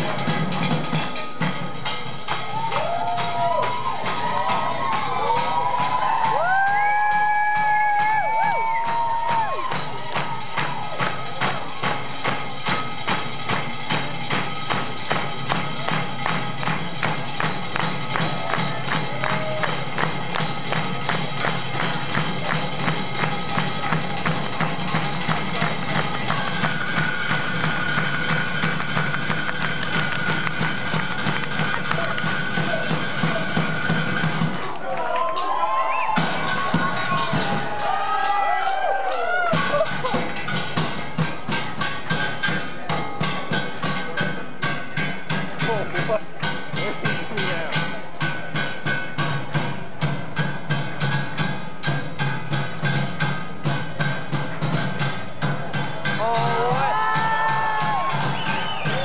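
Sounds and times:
drums and percussion beat: 0:00.0 - 0:59.0
crowd whooping and cheering: 0:02.2 - 0:12.2, 0:17.7 - 0:21.1, 0:34.4 - 0:40.4, 0:56.1 - 0:59.0.

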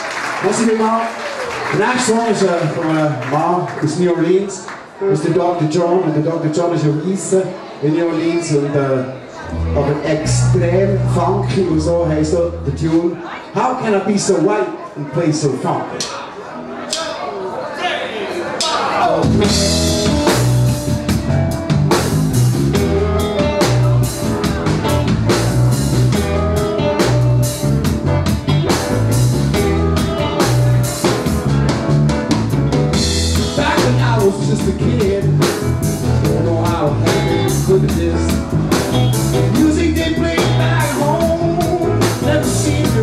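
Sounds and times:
electric guitar: 0:09.4 - 0:12.7, 0:19.1 - 0:43.0
electric bass: 0:09.4 - 0:13.0, 0:19.1 - 0:43.0
drum kit: 0:18.6 - 0:43.0.

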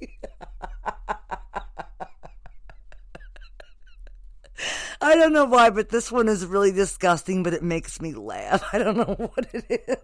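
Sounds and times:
woman laughing breathily: 0:00.0 - 0:05.0.

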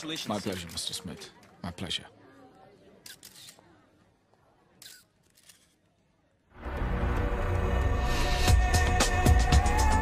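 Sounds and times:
faint crowd chatter: 0:00.0 - 0:06.8
camera shutter clicks: 0:03.0 - 0:03.6, 0:04.8 - 0:05.8.

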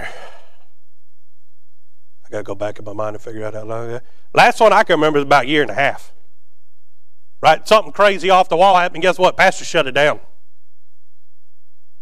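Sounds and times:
man sighing: 0:00.0 - 0:00.7
faint low hum: 0:00.0 - 0:12.0.

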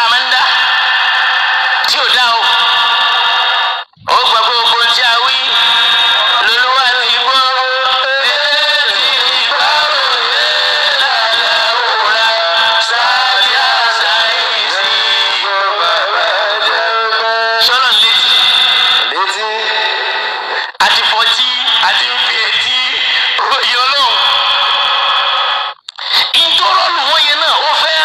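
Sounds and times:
person chanting sing-song: 0:00.0 - 0:23.4.

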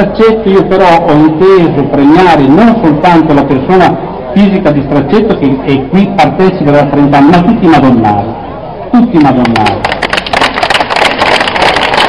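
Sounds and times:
crowd applauding: 0:09.4 - 0:12.0.

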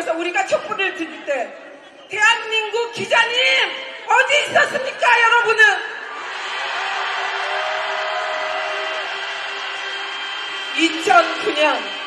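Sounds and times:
crowd shouting and cheering: 0:06.0 - 0:12.0.

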